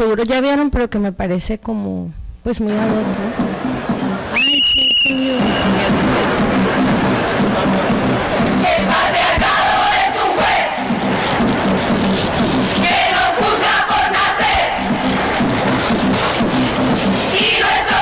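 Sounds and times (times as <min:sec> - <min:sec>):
low regular beat: 0:02.2 - 0:18.0
crowd chanting in unison: 0:05.4 - 0:11.5, 0:12.3 - 0:16.4, 0:17.1 - 0:18.0.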